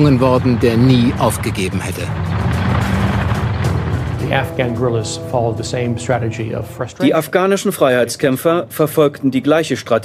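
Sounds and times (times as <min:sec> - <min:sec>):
background music: 0:00.0 - 0:10.0
military vehicle engines rumbling: 0:00.0 - 0:10.0.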